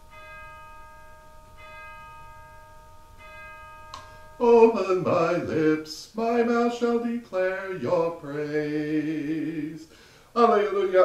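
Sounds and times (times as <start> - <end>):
bell ringing: 0.0 - 5.8.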